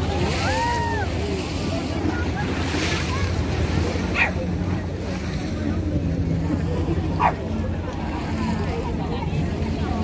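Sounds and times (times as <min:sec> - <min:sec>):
waves washing against seawall: 0:00.0 - 0:10.0.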